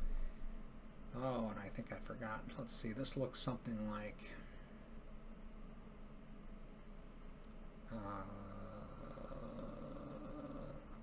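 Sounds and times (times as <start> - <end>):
man humming in hesitation: 7.9 - 11.0.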